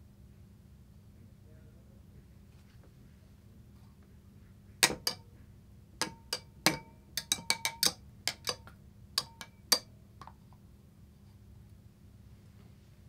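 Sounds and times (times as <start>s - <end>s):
glass beaker ticking and clinking: 6.0s - 9.9s.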